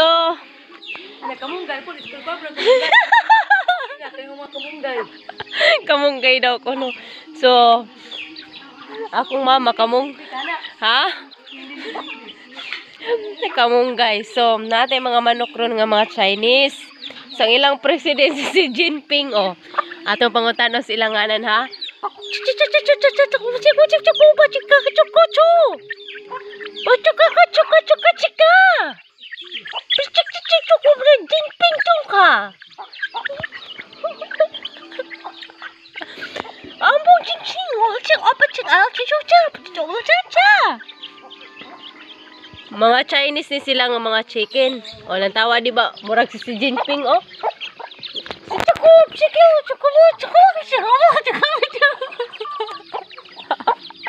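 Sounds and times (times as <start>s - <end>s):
chickens clucking: 0.0s - 54.0s.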